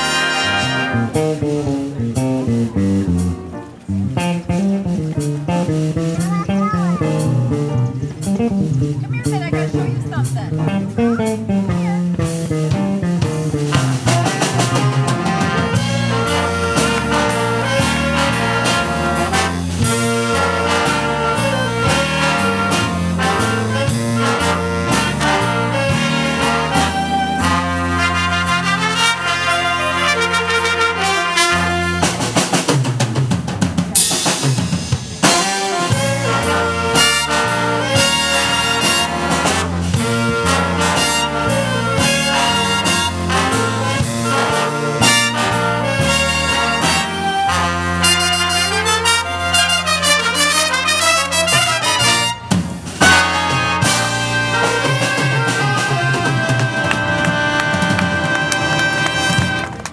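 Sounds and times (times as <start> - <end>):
drum kit and cymbals: 0.0 - 59.8
bass: 0.0 - 59.9
big band horns: 0.0 - 59.9.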